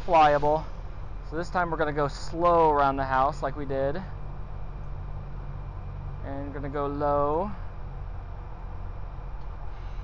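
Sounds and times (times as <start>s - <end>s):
faint hiss: 0.0s - 3.5s
steady low hum: 0.0s - 10.0s.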